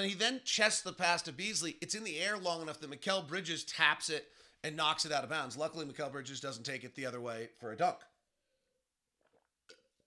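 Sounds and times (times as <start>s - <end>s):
man swallowing a drink: 9.2s - 10.0s.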